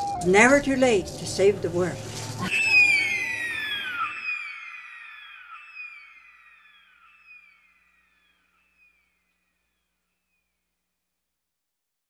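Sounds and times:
echoing whistle-like cry: 2.4s - 9.1s.

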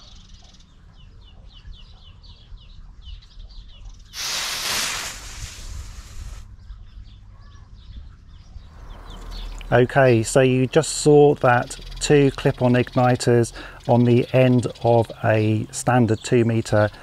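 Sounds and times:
birds chirping: 0.0s - 17.0s
igniter hissing fizz: 4.2s - 6.5s.

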